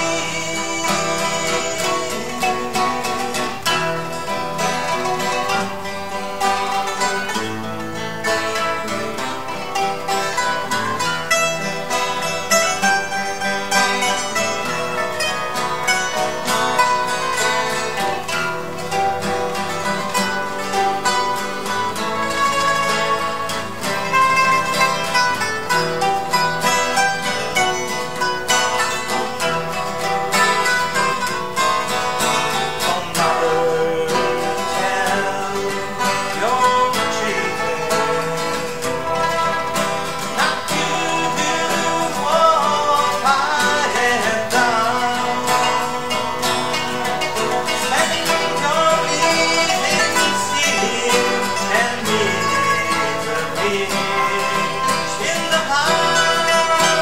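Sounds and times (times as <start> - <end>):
man singing: 0.0 - 57.0
plucked string ensemble: 0.0 - 57.0.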